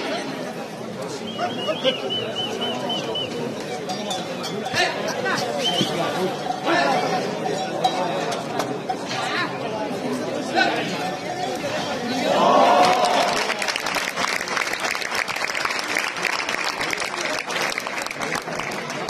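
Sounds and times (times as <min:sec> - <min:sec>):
crowd talking and calling out: 0:00.0 - 0:19.0
loud drawn-out shout: 0:12.2 - 0:13.6
scattered clapping: 0:12.7 - 0:19.0.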